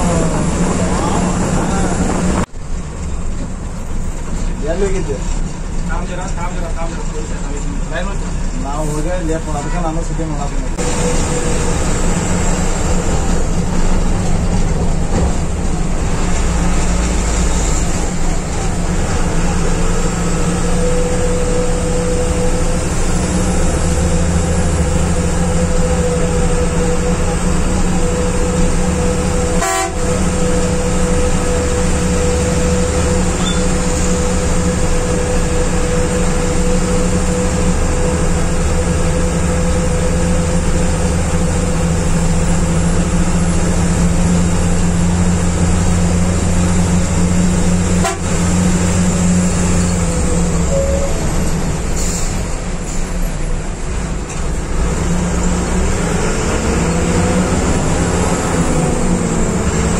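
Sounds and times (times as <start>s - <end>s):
bus engine and road noise: 0.0s - 59.9s.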